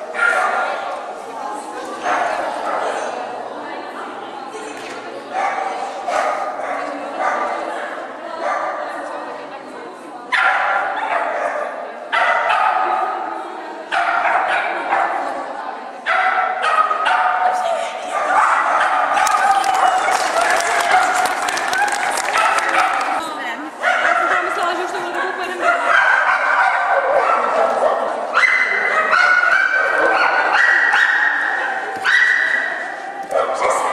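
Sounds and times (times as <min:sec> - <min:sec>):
dog barking in echoing hall: 0:00.0 - 0:01.1, 0:01.9 - 0:03.3, 0:05.3 - 0:09.0, 0:10.3 - 0:24.9, 0:25.6 - 0:33.9.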